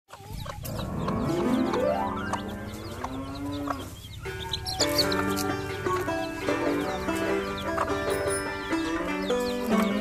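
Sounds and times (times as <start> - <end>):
chicks peeping: 0.1 - 10.0
background music: 0.4 - 10.0.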